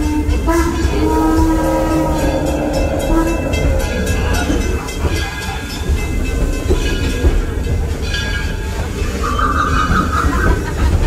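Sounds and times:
train rumbling and rattling: 0:00.0 - 0:11.0
steady high tone: 0:00.8 - 0:07.1.

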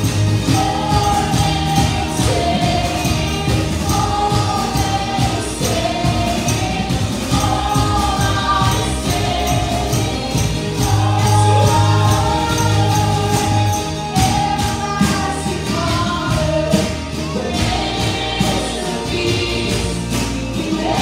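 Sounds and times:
group of voices singing: 0:00.0 - 0:21.0
instrumental accompaniment: 0:00.0 - 0:21.0
steady percussive beat: 0:00.0 - 0:21.0.

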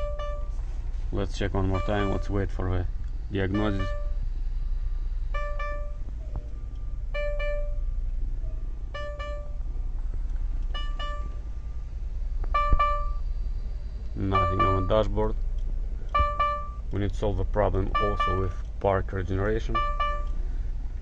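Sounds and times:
electronic warning chime: 0:00.0 - 0:00.6, 0:01.6 - 0:02.4, 0:03.4 - 0:04.2, 0:05.3 - 0:06.0, 0:07.1 - 0:09.7, 0:10.8 - 0:11.5, 0:12.6 - 0:13.2, 0:14.2 - 0:15.1, 0:16.1 - 0:16.9, 0:17.8 - 0:18.6, 0:19.6 - 0:20.4
diesel engine idling: 0:00.0 - 0:21.0.

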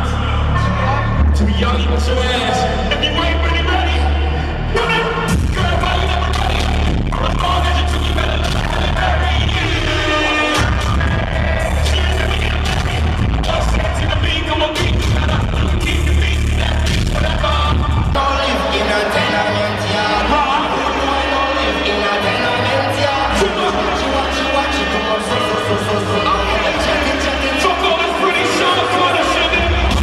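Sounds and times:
live rap music over pa: 0:00.0 - 0:30.0.

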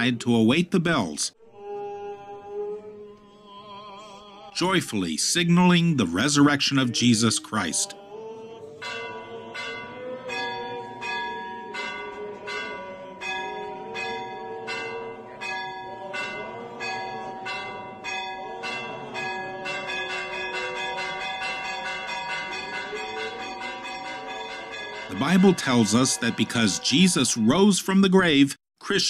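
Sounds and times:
church bells ringing: 0:08.8 - 0:28.3.

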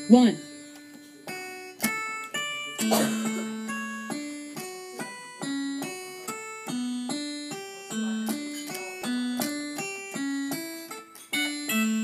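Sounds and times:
electronic keyboard single notes: 0:00.0 - 0:12.0.

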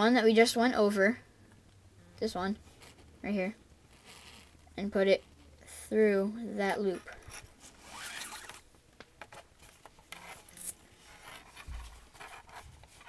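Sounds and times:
cord strands rustling: 0:02.6 - 0:03.2, 0:03.8 - 0:05.6, 0:06.9 - 0:13.0.

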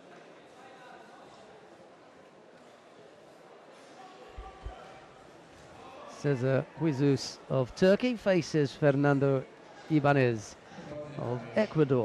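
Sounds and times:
distant voices in sports hall: 0:00.0 - 0:12.0.

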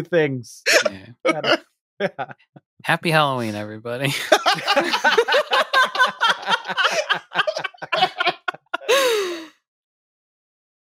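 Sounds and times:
sighing voice: 0:00.7 - 0:01.6, 0:06.7 - 0:09.5
people laughing: 0:00.7 - 0:02.4, 0:04.1 - 0:09.5.

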